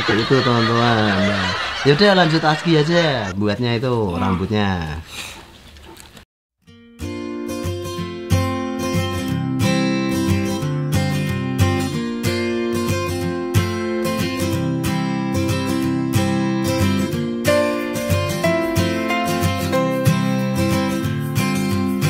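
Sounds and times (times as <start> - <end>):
acoustic guitar strumming: 6.6 - 22.0.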